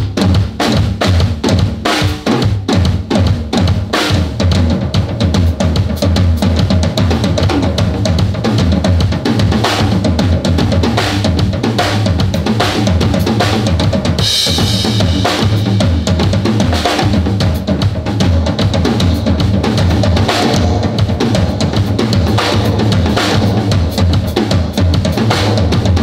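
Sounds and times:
drum kit beat: 0.0 - 26.0
electric bass: 4.1 - 26.0.

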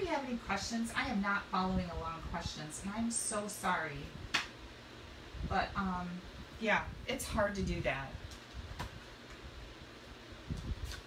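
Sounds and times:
room hiss: 0.0 - 11.0.

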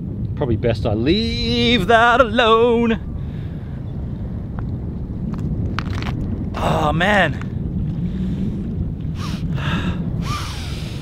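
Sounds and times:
wind rumble on microphone: 0.0 - 11.0
man breathing deeply: 3.0 - 4.0, 7.9 - 11.0.

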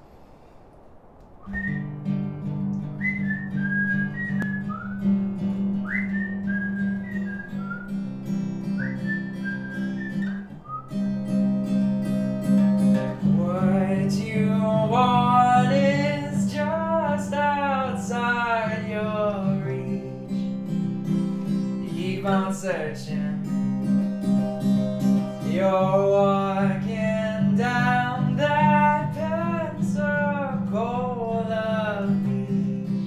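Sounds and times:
whistled melody: 1.4 - 2.2, 2.8 - 11.2
acoustic guitar picking: 1.5 - 33.0
man singing: 13.2 - 20.6, 21.8 - 23.6, 25.4 - 33.0.

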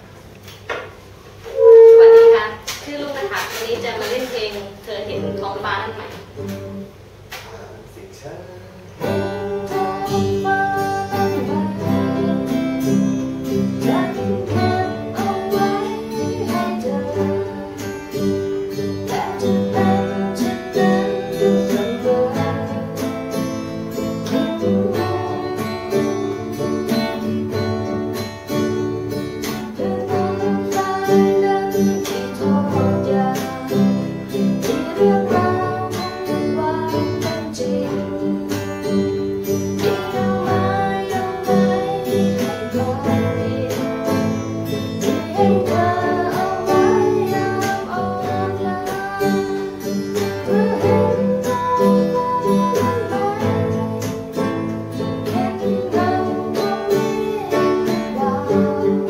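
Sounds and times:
acoustic guitar picking and strumming: 0.0 - 7.6, 8.6 - 59.0.

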